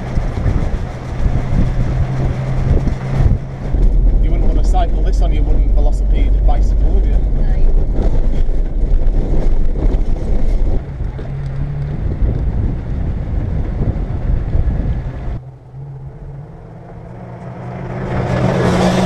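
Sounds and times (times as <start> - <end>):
engine hum: 0.0 - 19.0
van rumbling and rattling on dirt road: 0.0 - 19.0.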